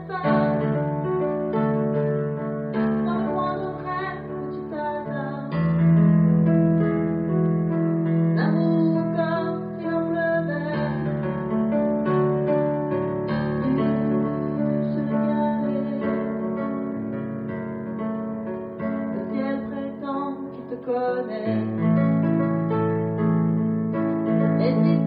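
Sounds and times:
slow piano chords: 0.0s - 25.0s.

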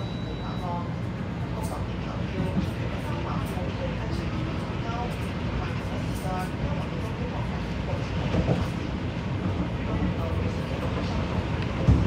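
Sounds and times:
electric train rumbling: 0.0s - 12.0s
train passing alongside: 0.0s - 12.0s.

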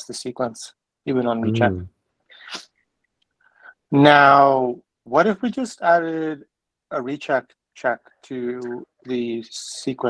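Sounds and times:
person speaking: 1.1s - 2.6s, 3.9s - 10.0s
breathy microphone noise: 1.3s - 4.1s.

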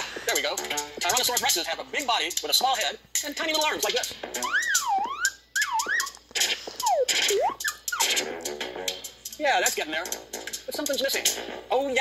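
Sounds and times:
playful electronic music: 0.3s - 1.6s, 3.6s - 11.6s.

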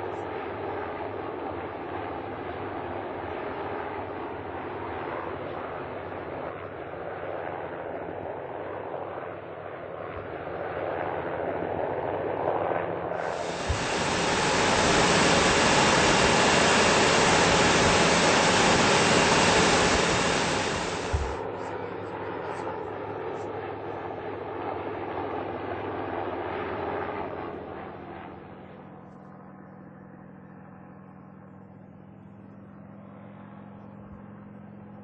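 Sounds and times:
helicopter engine and rotor: 0.0s - 35.0s.

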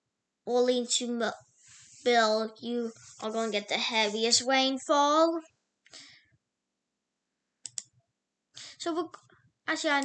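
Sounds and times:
person speaking: 0.5s - 5.4s, 8.6s - 10.0s
computer mouse clicks: 7.6s - 7.9s.

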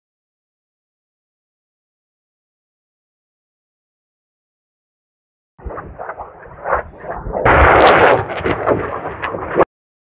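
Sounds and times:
low rumble: 5.6s - 9.7s
rocket launch roar: 5.6s - 9.7s.

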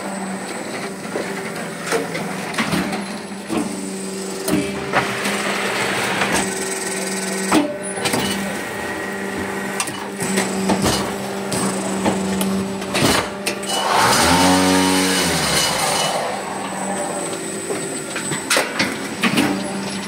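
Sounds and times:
hydraulic power pack hum: 10.2s - 19.8s.

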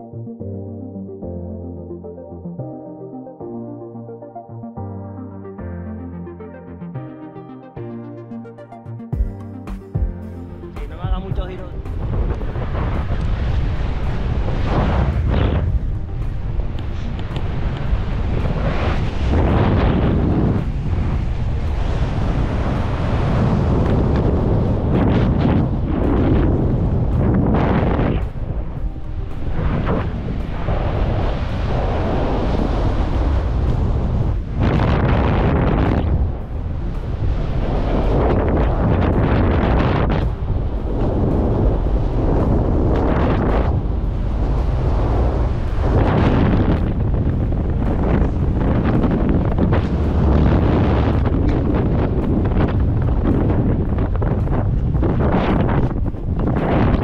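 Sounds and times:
wind buffeting microphone: 10.8s - 57.0s.

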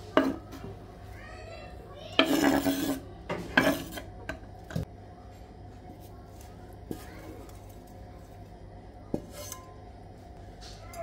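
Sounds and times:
chopping board scraping bowl: 2.2s - 4.1s.

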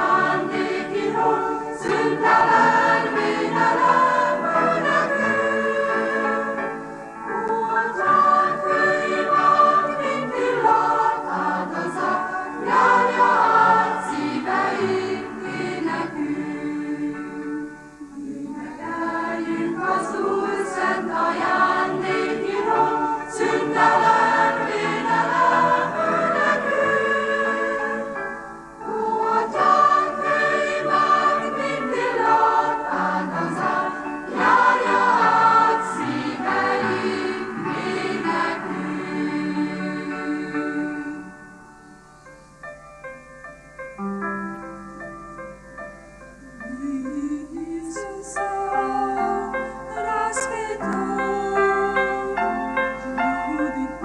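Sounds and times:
mixed choir singing: 0.0s - 41.6s, 46.6s - 54.0s.

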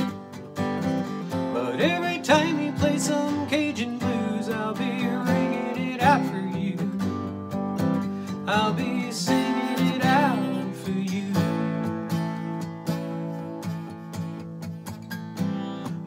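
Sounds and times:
acoustic guitar playing: 0.0s - 16.0s.

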